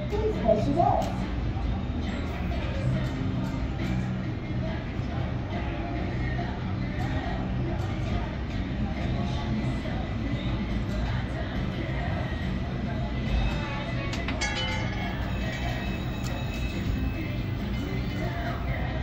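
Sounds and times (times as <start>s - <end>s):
casino background music: 0.0s - 19.0s
people chattering: 0.0s - 19.0s.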